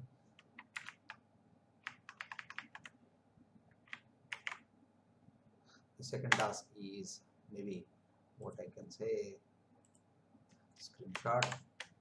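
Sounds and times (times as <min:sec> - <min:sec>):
computer keyboard clicks: 0:00.4 - 0:01.2, 0:01.8 - 0:02.9, 0:03.8 - 0:04.6, 0:06.3 - 0:06.6, 0:11.1 - 0:12.0.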